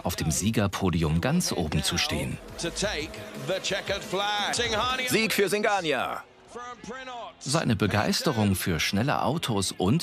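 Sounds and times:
person speaking: 0:00.0 - 0:03.4
background music: 0:00.0 - 0:10.0.

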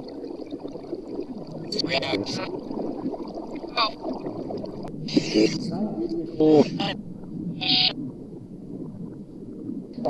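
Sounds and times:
reversed human speech: 0:01.7 - 0:02.5, 0:05.1 - 0:07.0, 0:07.6 - 0:07.9.

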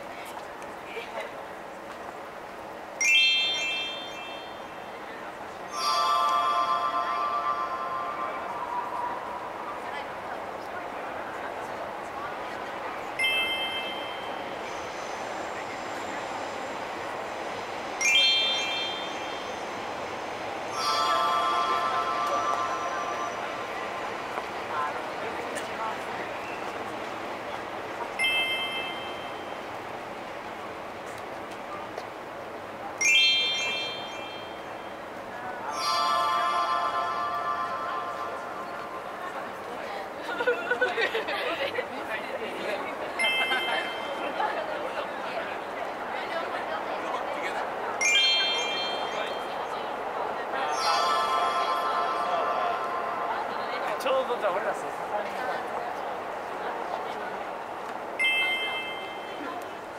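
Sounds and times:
people chattering: 0:00.0 - 0:59.9
bell-like chime tones: 0:03.0 - 0:04.9, 0:05.7 - 0:09.6, 0:13.2 - 0:14.5, 0:18.0 - 0:19.9, 0:20.7 - 0:24.0, 0:28.2 - 0:29.6, 0:33.0 - 0:35.0, 0:35.6 - 0:39.3, 0:43.2 - 0:44.5, 0:48.0 - 0:49.8, 0:50.7 - 0:53.4, 0:58.2 - 0:59.5.

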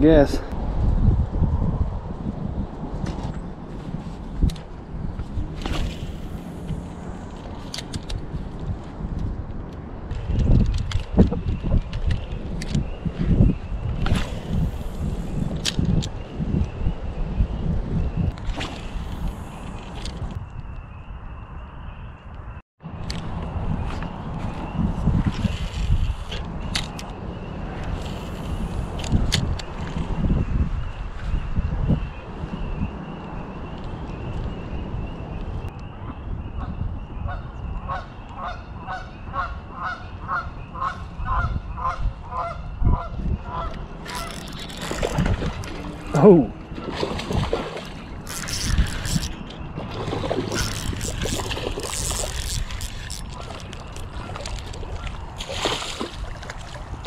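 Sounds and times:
wind rumbling on microphone: 0:00.0 - 0:57.0.

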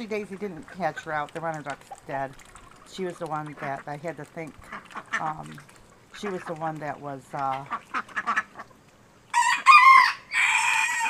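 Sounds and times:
rooster crowing: 0:09.3 - 0:11.0.

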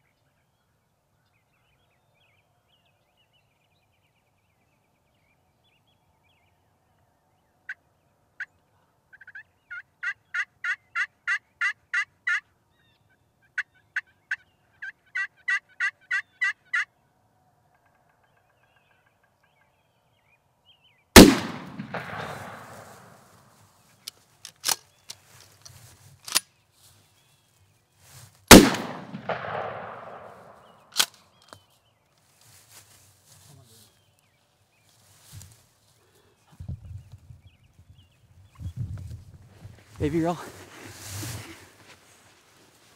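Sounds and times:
wild turkey yelping: 0:09.1 - 0:12.5, 0:13.5 - 0:16.9
shotgun blasts echoing: 0:21.2 - 0:23.4, 0:28.5 - 0:31.1.

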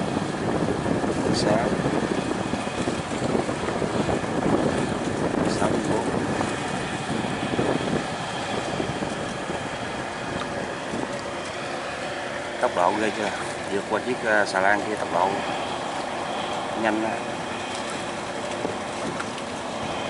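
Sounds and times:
boat engine running: 0:00.0 - 0:20.0
water rushing: 0:00.0 - 0:20.0
wind buffeting microphone: 0:00.0 - 0:20.0.

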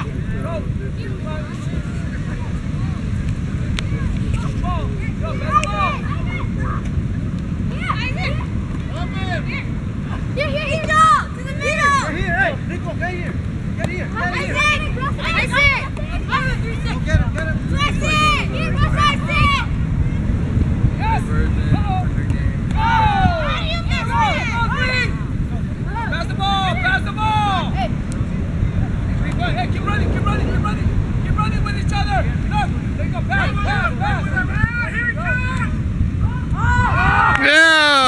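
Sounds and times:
wind buffeting microphone: 0:00.0 - 0:37.5.

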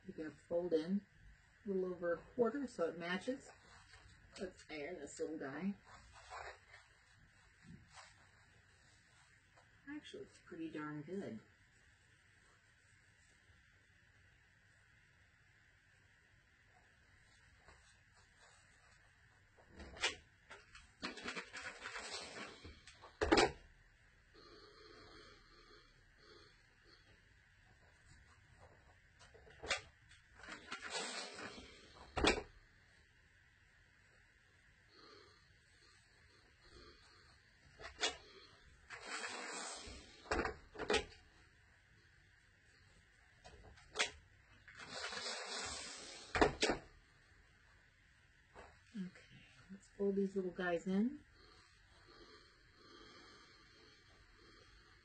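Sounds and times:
rustling: 0:05.8 - 0:09.8.

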